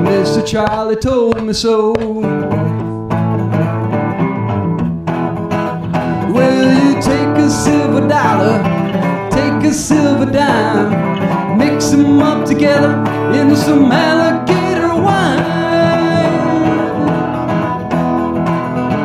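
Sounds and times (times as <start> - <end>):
resonator guitar playing: 2.1 - 19.0.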